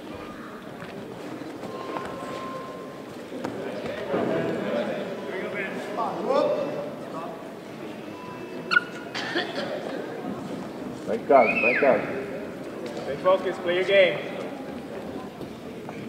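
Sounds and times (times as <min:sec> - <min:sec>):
indistinct voices calling out: 0:01.6 - 0:03.2.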